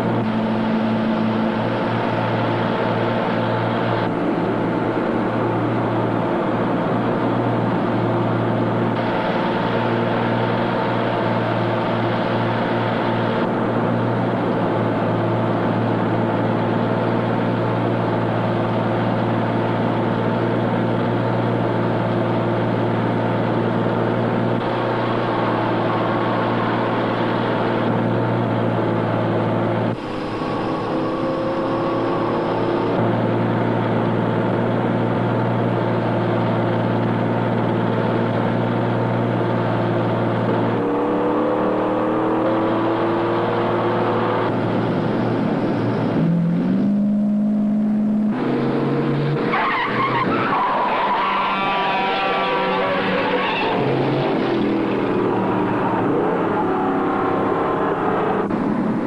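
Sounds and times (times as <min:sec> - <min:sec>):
car and truck engines driving: 0:00.0 - 0:59.0
wavering higher sound: 0:30.0 - 0:33.0.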